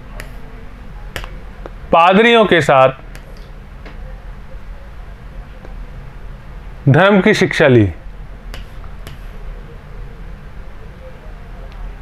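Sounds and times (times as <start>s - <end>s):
stylus tapping on screen: 0.1s - 0.4s, 1.1s - 1.8s, 3.1s - 3.5s, 8.5s - 9.3s.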